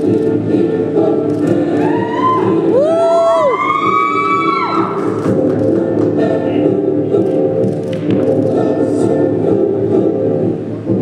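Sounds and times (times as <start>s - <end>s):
music over sound system: 0.0s - 11.0s
audience whooping and cheering: 1.7s - 5.2s.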